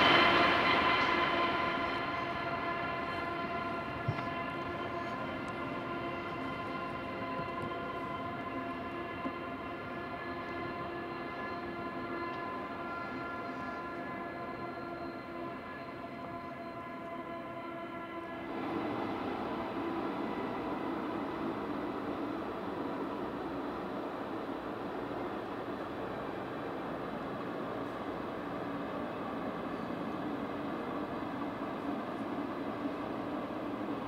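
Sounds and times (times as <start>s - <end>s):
steam train whistle note: 0.0s - 34.0s
train running rumble: 0.0s - 34.0s.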